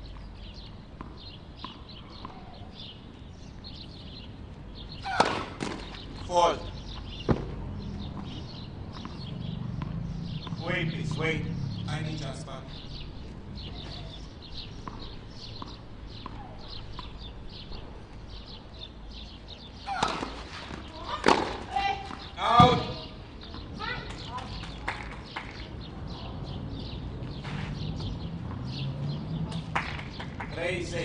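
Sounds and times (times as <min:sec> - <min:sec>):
birds chirping: 0:00.0 - 0:31.0
tennis racket striking ball: 0:05.0 - 0:06.2, 0:19.9 - 0:22.9.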